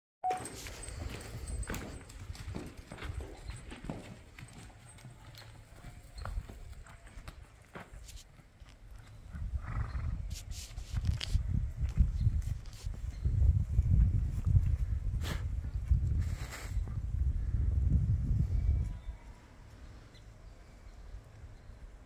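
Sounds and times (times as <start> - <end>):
horse hooves clopping on dirt: 0.2 - 16.2.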